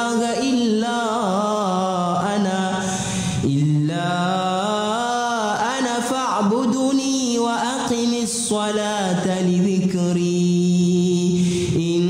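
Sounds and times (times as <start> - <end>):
man chanting melodically: 0.0 - 12.0
breath: 2.8 - 3.5, 11.3 - 11.8.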